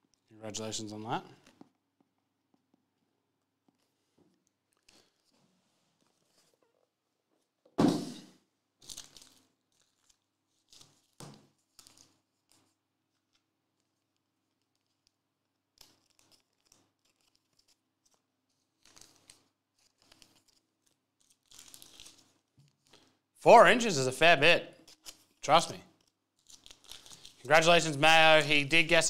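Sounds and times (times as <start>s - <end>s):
thin plastic crinkling: 8.8s - 23.1s, 24.8s - 27.6s.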